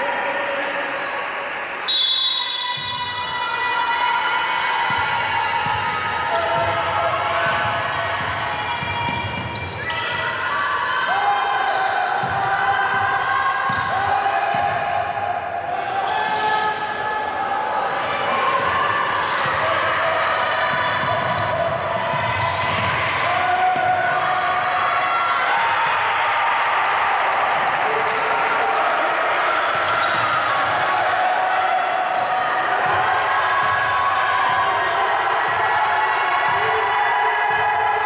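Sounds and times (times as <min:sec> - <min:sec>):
players calling out: 0:02.0 - 0:38.0
sneaker squeaks: 0:04.8 - 0:17.6, 0:19.2 - 0:25.8, 0:29.6 - 0:30.9.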